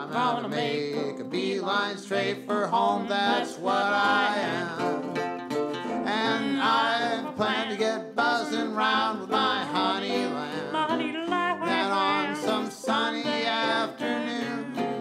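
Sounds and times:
duet singing with vibrato: 0.0s - 15.0s
plucked-string accompaniment: 0.0s - 15.0s.

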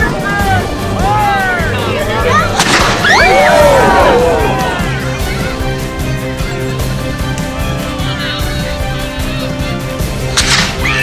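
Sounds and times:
people shouting: 0.0s - 5.8s, 10.7s - 11.0s
background music: 0.0s - 11.0s
cannon firing: 2.6s - 3.1s.

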